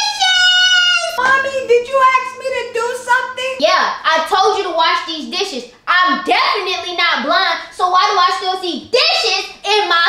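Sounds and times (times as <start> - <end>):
young woman talking excitedly: 0.0 - 10.0.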